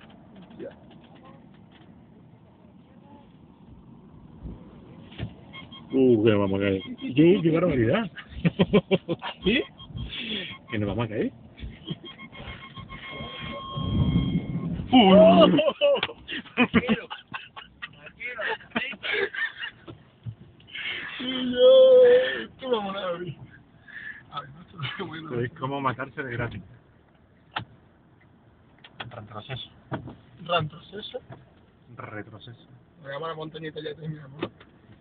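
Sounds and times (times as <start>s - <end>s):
steady high-pitched tone: 11.9s - 15.6s
person shouting: 14.9s - 15.8s, 21.2s - 22.2s.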